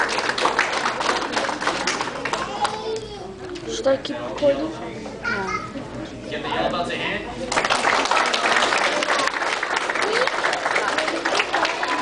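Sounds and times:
children chattering: 1.6 - 6.2, 8.8 - 12.0.

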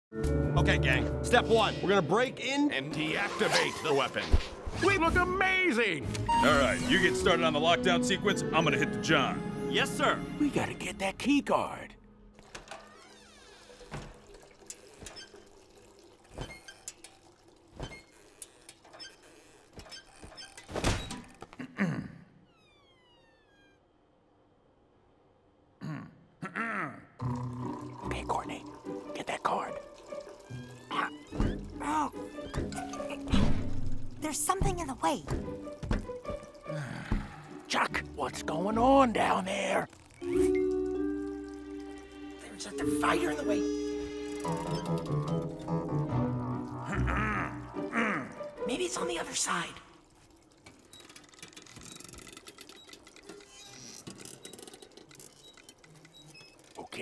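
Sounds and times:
faint background music: 0.3 - 12.0, 27.4 - 49.9
cartoon character grunting: 25.8 - 27.2, 46.8 - 48.4
rapid clicking and ticking: 50.4 - 57.0.

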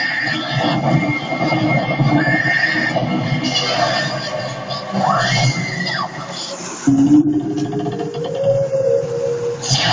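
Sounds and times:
television soundtrack: 0.0 - 9.9.

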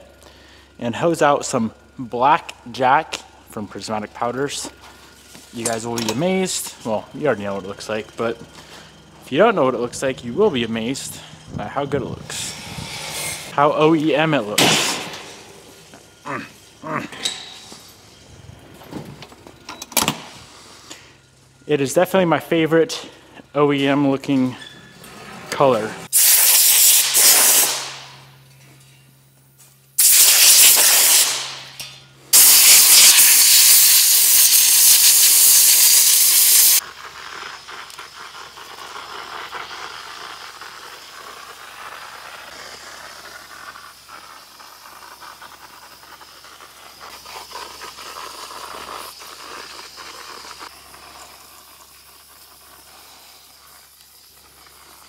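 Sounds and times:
compressed air blowgun blasts: 26.1 - 28.2, 30.0 - 36.8
powder-coating gun air hiss: 26.1 - 28.2, 30.0 - 36.8, 38.6 - 55.0.

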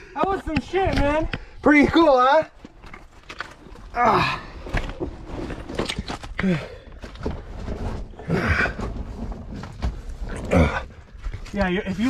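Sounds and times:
scrapes of clothing and feet on rock: 0.6 - 12.0.

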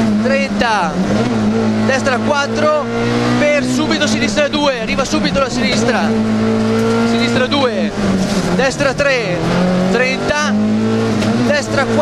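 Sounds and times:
rally car engine pulling hard: 0.0 - 12.0.

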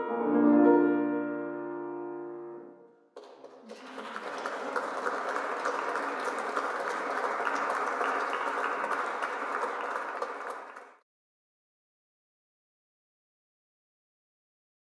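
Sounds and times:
audience applauding: 3.2 - 11.0.

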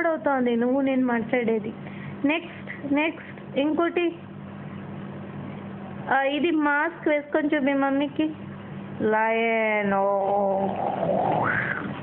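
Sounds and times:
steady low hum: 0.0 - 12.0
long drawn-out vocal sound: 10.3 - 12.0.

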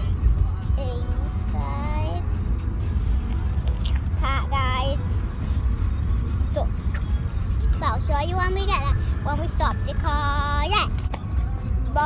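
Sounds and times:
car rumbling from inside cabin: 0.0 - 12.0.

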